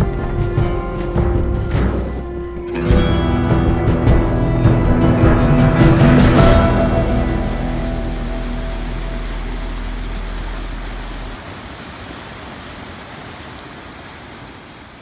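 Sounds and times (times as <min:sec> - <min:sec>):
background music: 0:00.0 - 0:11.4
low hum: 0:00.0 - 0:11.4
waterfall and rapids rushing: 0:04.0 - 0:15.0.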